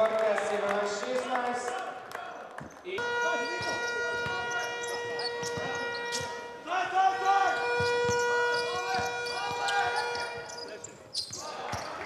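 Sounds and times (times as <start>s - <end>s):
held horn-like tone: 3.0s - 10.8s
basketball bouncing on court: 3.4s - 6.4s, 7.6s - 12.0s.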